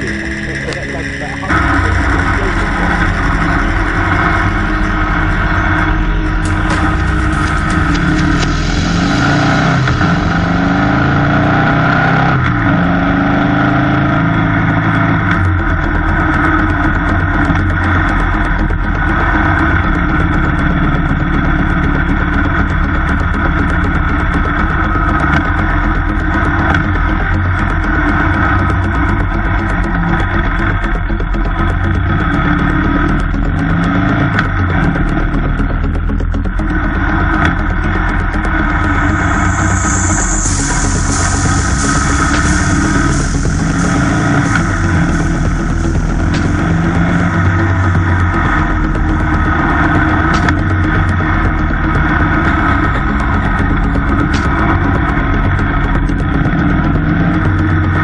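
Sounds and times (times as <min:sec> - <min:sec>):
motorcycle engine revving: 0:00.0 - 0:58.0
wind and road noise: 0:00.0 - 0:58.0.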